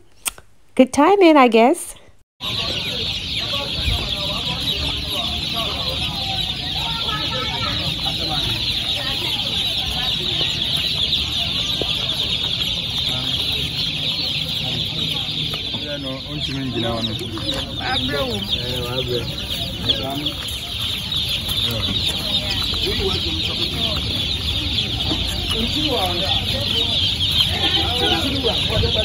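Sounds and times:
chicks peeping: 1.9 - 29.0.

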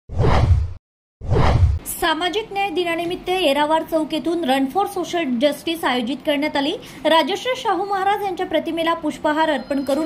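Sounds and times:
whoosh sound effects: 0.1 - 1.8.

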